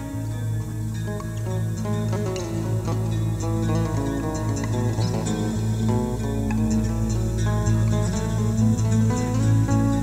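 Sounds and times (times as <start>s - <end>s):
acoustic guitar plucked notes: 0.0s - 10.0s
steady low drone: 0.0s - 10.0s.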